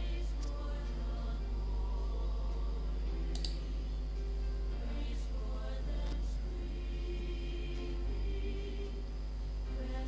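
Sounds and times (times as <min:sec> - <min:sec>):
steady low hum: 0:00.0 - 0:10.0
keyboard keystroke click: 0:03.3 - 0:03.6.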